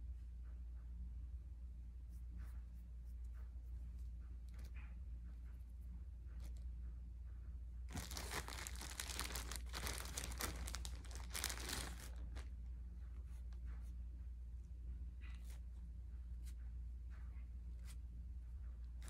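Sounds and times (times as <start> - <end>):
steady low hum: 0.0 - 19.0
wrappers tearing and crinkling: 7.9 - 12.5.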